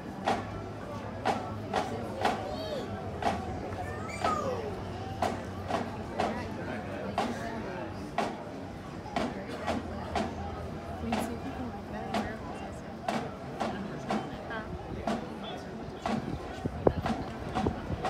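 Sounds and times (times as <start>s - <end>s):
crowd chatter: 0.0s - 18.0s
marching drum beating: 0.2s - 0.6s, 1.2s - 2.6s, 3.2s - 4.5s, 5.1s - 6.6s, 7.2s - 8.5s, 9.1s - 15.4s, 16.0s - 18.0s.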